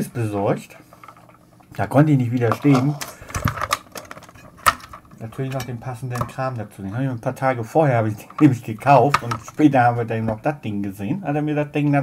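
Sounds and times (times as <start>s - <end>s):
objects clicking and knocking on workbench: 2.4s - 6.4s, 8.2s - 9.7s.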